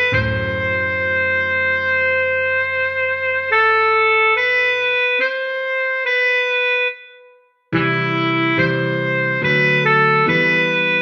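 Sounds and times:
backing track: 0:00.0 - 0:06.2, 0:07.8 - 0:11.0
tenor saxophone melody: 0:00.0 - 0:11.0.

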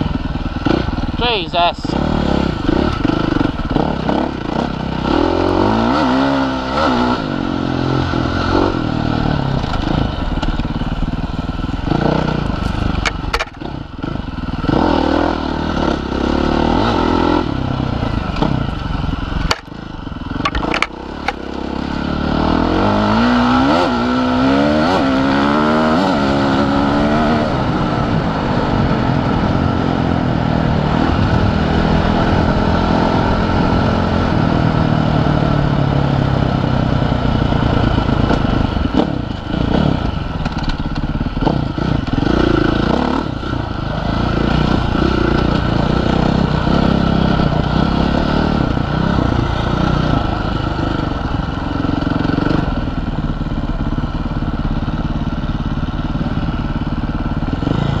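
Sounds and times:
dirt bike engine revving: 0:00.0 - 0:52.8, 0:57.3 - 0:58.0.

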